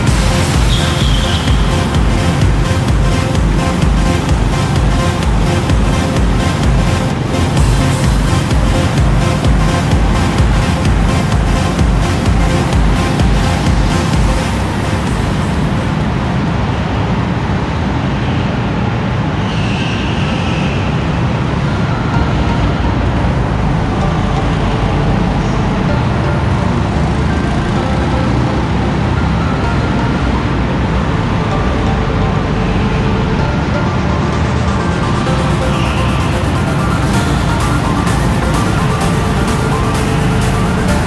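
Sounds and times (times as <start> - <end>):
go-kart engines running: 0.0 - 41.0.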